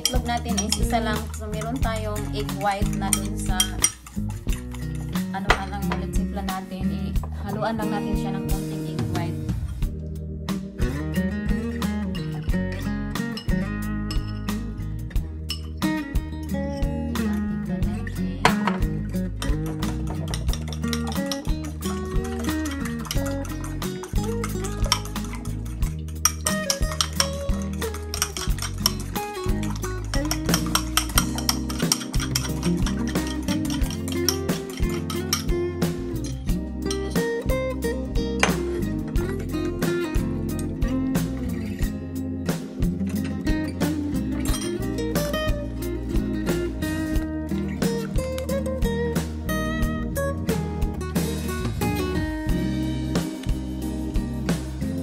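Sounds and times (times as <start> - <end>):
fork and whisk clinking on bowls: 0.0 - 6.1, 13.3 - 14.5, 15.5 - 15.8, 19.4 - 37.2, 44.4 - 44.9
background music with steady beat: 0.0 - 55.0.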